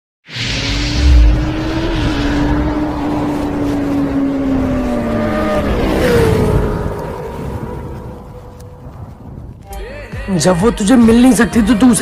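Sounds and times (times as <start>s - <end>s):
race car high whine: 0.3s - 8.8s.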